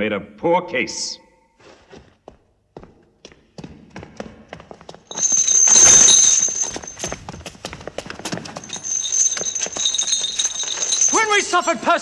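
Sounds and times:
faint high ringing tone: 0:05.1 - 0:07.2, 0:08.7 - 0:11.2.

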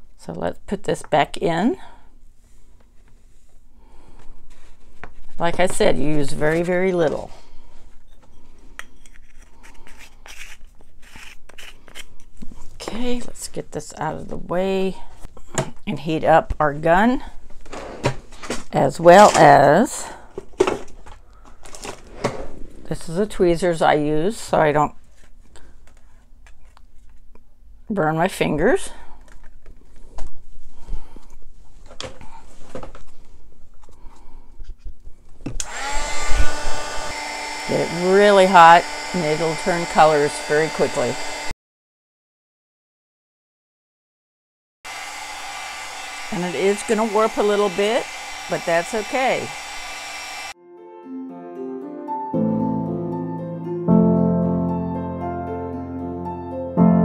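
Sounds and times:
soft scrapes and paper rustles: 0:02.4 - 0:05.6, 0:06.5 - 0:12.8, 0:25.0 - 0:27.2
handling knocks and rustles: 0:20.3 - 0:22.5
heat gun blowing: 0:35.6 - 0:41.5, 0:44.9 - 0:50.6.

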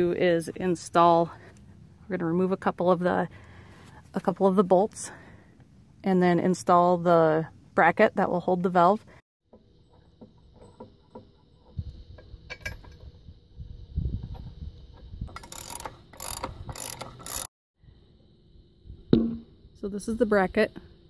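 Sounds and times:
ratchet wrench clicking: 0:15.3 - 0:17.5.

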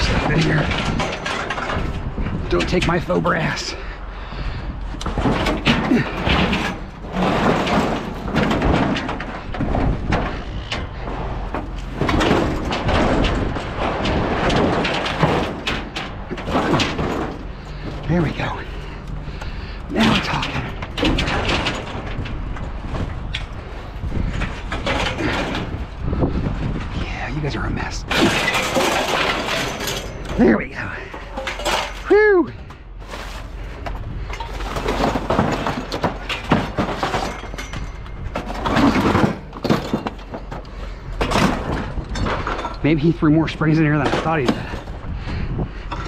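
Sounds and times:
scrap metal clanking and banging: 0:00.0 - 0:46.0.

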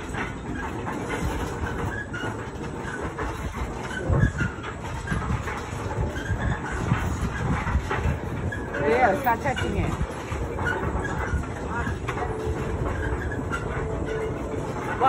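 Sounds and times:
carousel rumble and clatter: 0:00.0 - 0:15.0.

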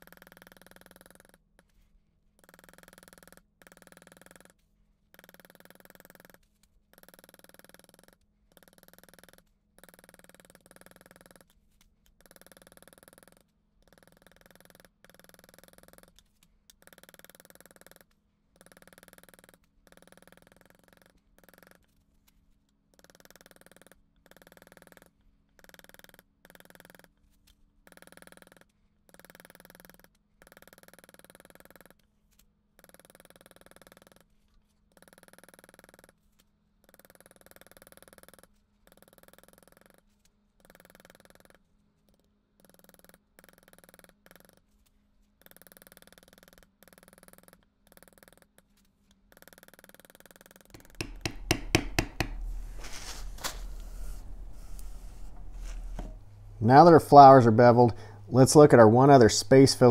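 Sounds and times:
maul tapping steel beveler: 0:50.8 - 0:52.6.

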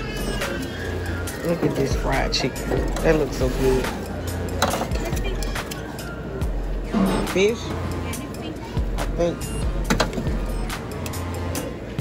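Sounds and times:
background music: 0:00.0 - 0:12.0
hum of chatter: 0:00.0 - 0:12.0.

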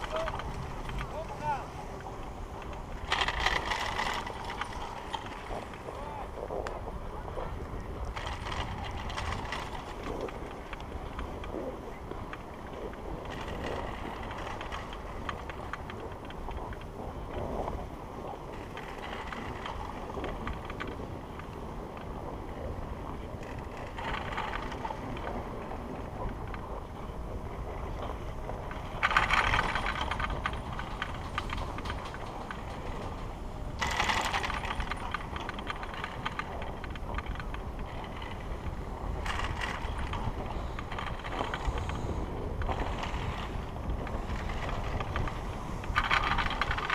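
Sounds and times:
ski lift pole clicks and rattles: 0:00.0 - 0:06.8, 0:07.9 - 0:11.5, 0:28.0 - 0:46.9
low rumble: 0:00.0 - 0:12.1
skis sliding over packed snow: 0:00.0 - 0:46.9.

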